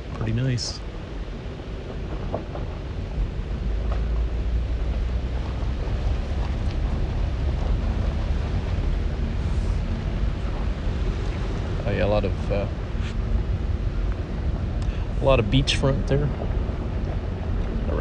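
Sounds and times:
vehicle rumbling on gravel: 1.2 - 18.0.

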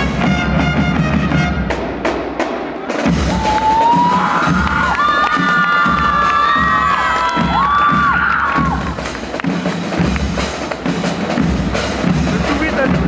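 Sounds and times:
bass drums beating: 0.0 - 13.0
audience cheering and shrieking: 3.0 - 9.0.

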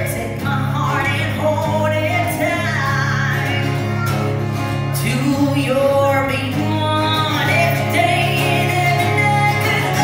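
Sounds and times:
woman singing: 0.0 - 4.0, 4.7 - 10.0
acoustic guitar: 0.0 - 10.0.

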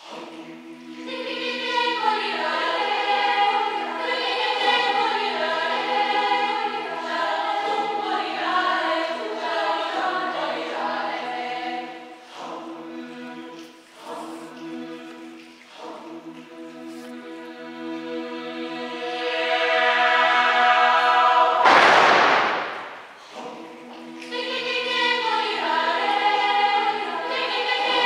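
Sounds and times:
upper voices singing melody: 0.0 - 28.0.

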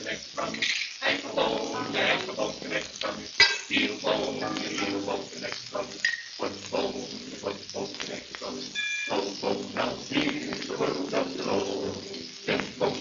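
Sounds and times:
glee club singing on a record: 0.0 - 13.0
whistle-like tone: 8.7 - 9.3.

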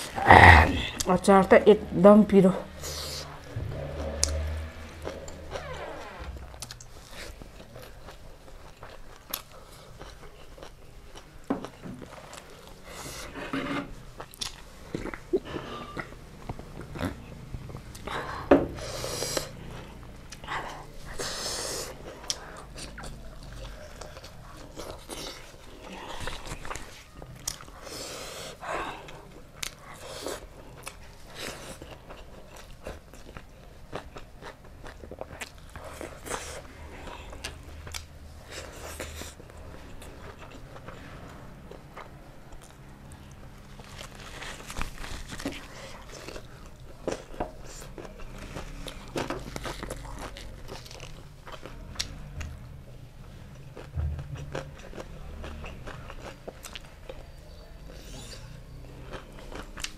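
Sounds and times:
person chewing: 6.4 - 13.4, 14.2 - 52.6, 53.5 - 57.3, 57.9 - 59.9.

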